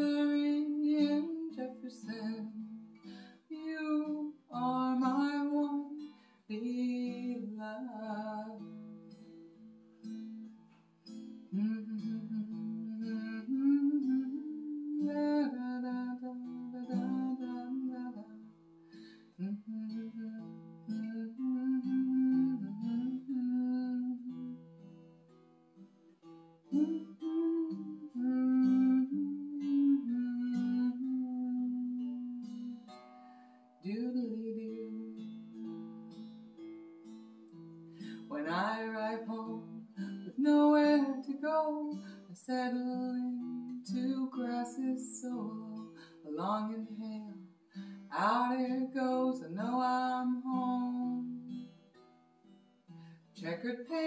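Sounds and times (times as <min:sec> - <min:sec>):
acoustic guitar folk song: 0:00.0 - 0:54.0.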